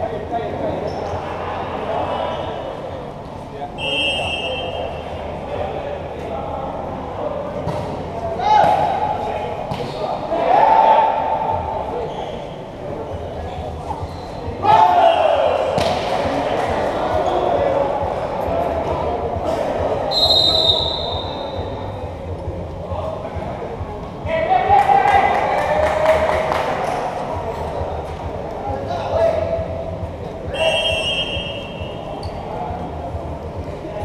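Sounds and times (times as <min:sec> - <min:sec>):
voices: 0:00.0 - 0:34.0
referee's whistle: 0:03.8 - 0:05.0, 0:20.1 - 0:21.6, 0:30.5 - 0:32.4
players and spectators shouting: 0:10.2 - 0:11.9, 0:14.5 - 0:15.8
loud shout: 0:14.6 - 0:15.8
volleyball being hit: 0:15.7 - 0:16.2.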